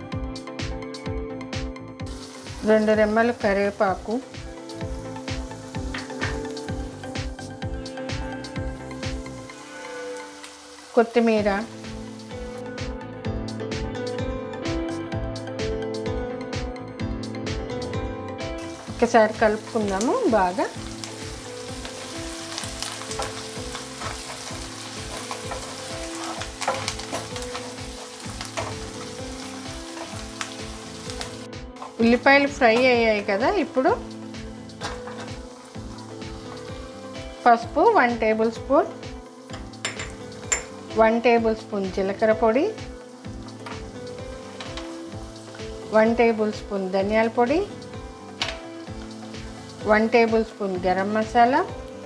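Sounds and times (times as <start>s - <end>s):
soft background music: 0.0s - 52.0s
vegetables sizzling in hot oil: 1.5s - 15.8s, 17.4s - 52.0s
wooden spatula scraping a pan: 23.1s - 27.8s.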